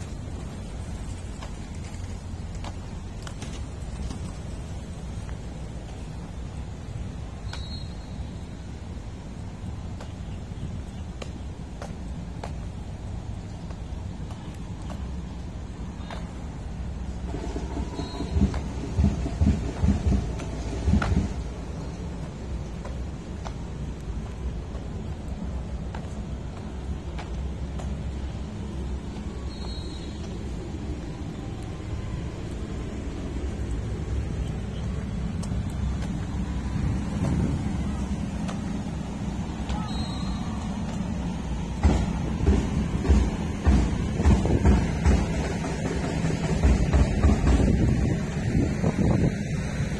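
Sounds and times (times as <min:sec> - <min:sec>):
steady low rumble: 0:00.0 - 0:49.9.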